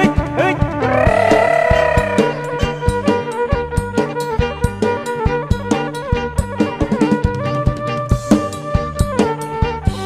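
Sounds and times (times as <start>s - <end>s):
sustained melody line: 0.8s - 4.1s.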